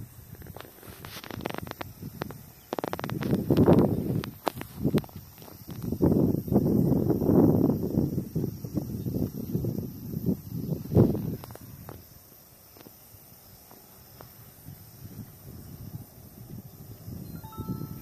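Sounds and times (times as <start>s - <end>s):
faint hiss: 0.0s - 18.0s.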